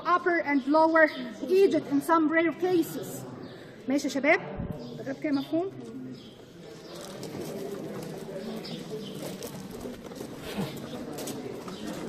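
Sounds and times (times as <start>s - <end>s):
murmur of distant voices: 0.0s - 12.0s
birds calling: 4.6s - 12.0s.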